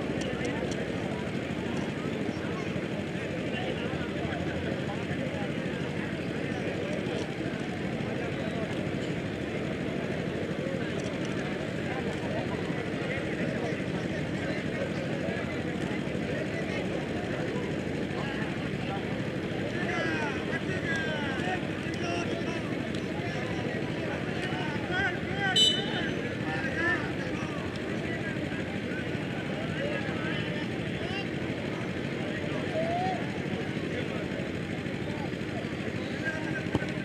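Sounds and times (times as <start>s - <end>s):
crowd murmuring: 0.0s - 37.0s.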